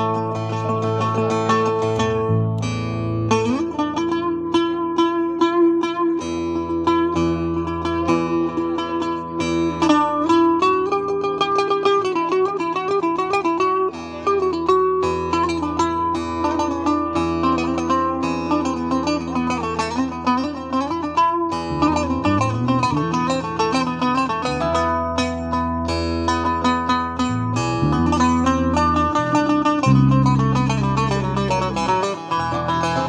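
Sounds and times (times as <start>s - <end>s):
lute strumming chords: 0.0s - 33.0s
sliding lute melody: 0.0s - 33.0s.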